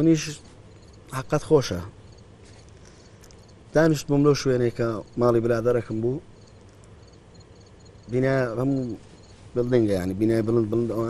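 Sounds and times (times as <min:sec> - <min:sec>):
man speaking: 0:00.0 - 0:00.5, 0:01.1 - 0:02.0, 0:03.8 - 0:06.3, 0:08.1 - 0:09.0, 0:09.6 - 0:11.0
low background hiss: 0:00.0 - 0:11.0
high-pitched insect chirping: 0:00.6 - 0:02.3, 0:03.1 - 0:09.4.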